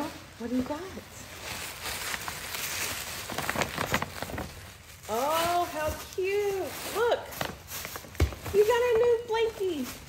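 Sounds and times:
tissue paper rustling and crinkling: 0:00.0 - 0:10.0.

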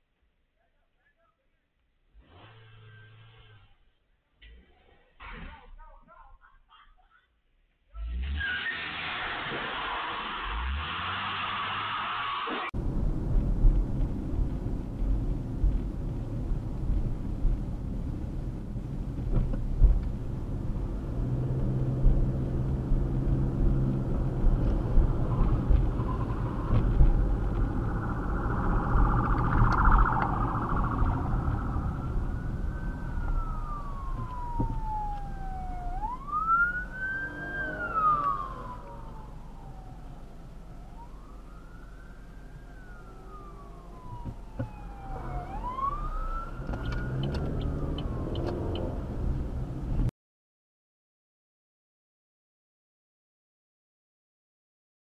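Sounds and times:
car engine and road noise: 0:07.4 - 0:50.1
emergency siren wailing: 0:24.8 - 0:49.0.

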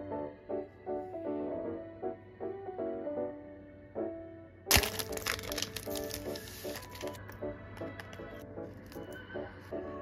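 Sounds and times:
soft piano music: 0:00.0 - 0:10.0
plastic sleeve crinkling: 0:04.7 - 0:07.2.

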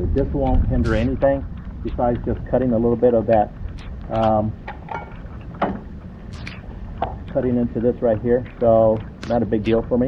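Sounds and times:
wind rumble on microphone: 0:00.0 - 0:10.0
sharp clicks: 0:06.3 - 0:07.4, 0:08.5 - 0:09.8.

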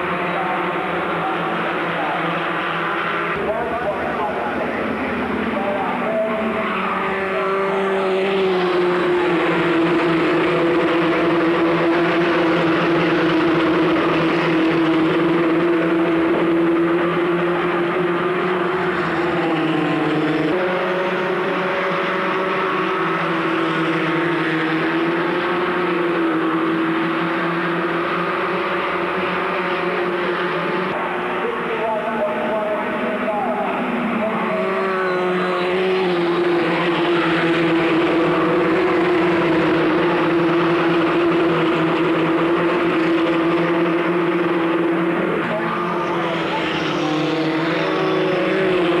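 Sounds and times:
racing car engines at high revs: 0:00.0 - 0:49.0.

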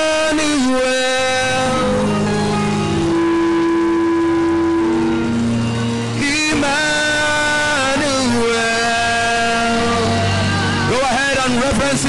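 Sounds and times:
slow worship music: 0:00.0 - 0:12.0.

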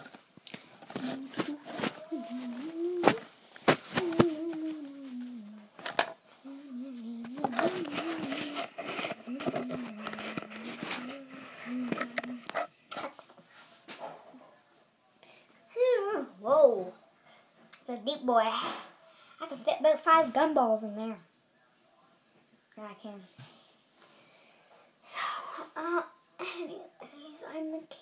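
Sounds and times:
girl humming: 0:00.9 - 0:03.3, 0:03.9 - 0:05.7, 0:06.4 - 0:12.6.

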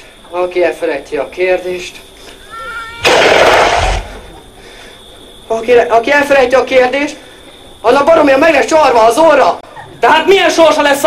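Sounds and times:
faint high-pitched vocal sound: 0:02.3 - 0:03.1.

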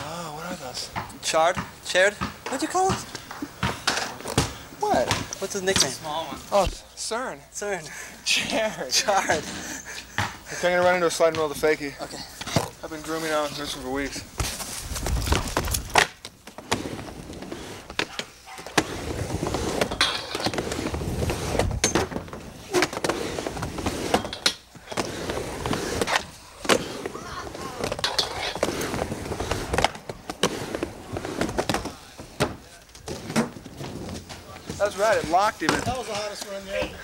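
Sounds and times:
skateboard wheels rolling on wood: 0:10.2 - 0:37.0.

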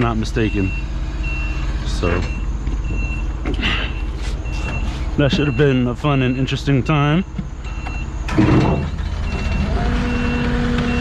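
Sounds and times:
diesel engine idling: 0:00.0 - 0:11.0
electronic warning beeps: 0:00.4 - 0:08.3, 0:09.3 - 0:11.0.

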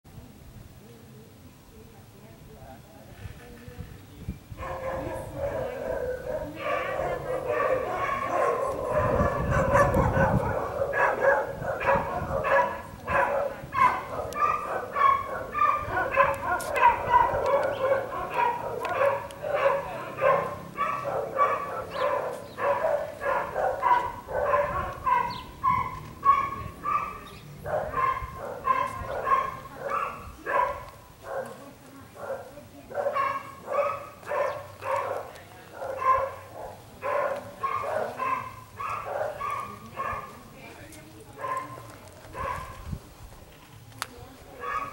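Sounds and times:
dog barking: 0:04.6 - 0:31.6, 0:32.2 - 0:40.4, 0:41.4 - 0:42.8, 0:44.6 - 0:44.9.

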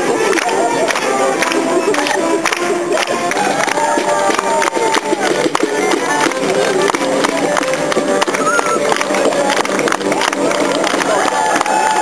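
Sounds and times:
folk melody: 0:00.0 - 0:12.0
voices: 0:00.0 - 0:12.0.

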